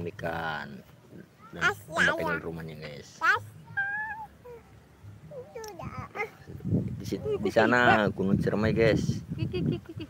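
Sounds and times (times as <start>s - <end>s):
high-pitched vocal calls: 3.2s - 6.5s.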